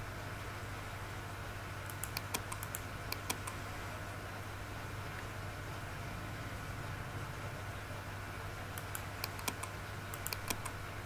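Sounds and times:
steady low hum: 0.0s - 11.0s
computer key clicks: 1.9s - 3.6s, 8.8s - 10.8s.

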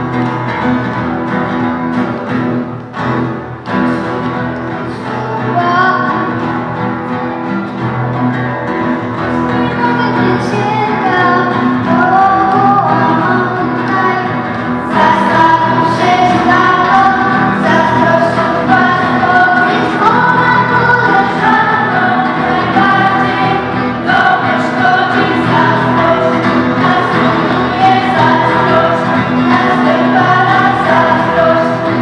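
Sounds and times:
instrumental accompaniment: 0.0s - 32.0s
girls singing in chorus: 9.5s - 32.0s.

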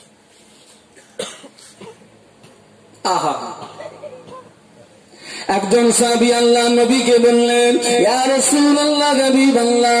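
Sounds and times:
man coughing: 0.9s - 2.1s, 3.2s - 4.6s.

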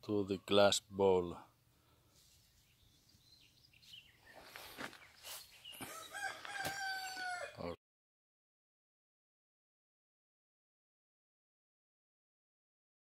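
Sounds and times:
rooster crowing: 5.8s - 7.8s.

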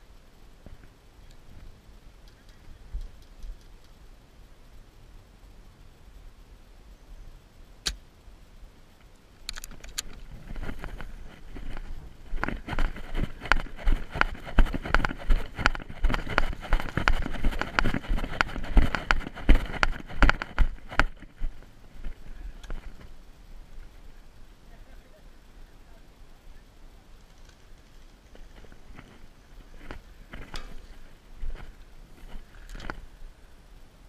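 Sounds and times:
heavy footfalls on grass: 10.3s - 22.2s.

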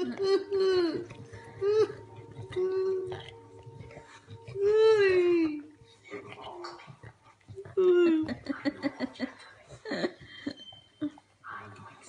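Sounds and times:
dog licking: 0.0s - 12.0s
man chuckling: 8.3s - 10.6s.

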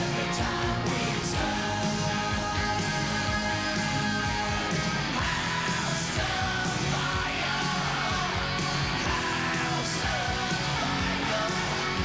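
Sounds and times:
hard rock band playing: 0.0s - 12.0s
person singing: 0.0s - 12.0s.

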